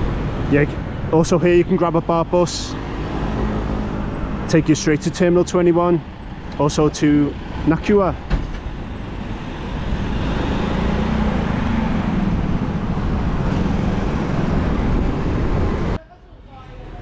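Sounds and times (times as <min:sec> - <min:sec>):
cars and trucks passing: 0:00.0 - 0:17.0.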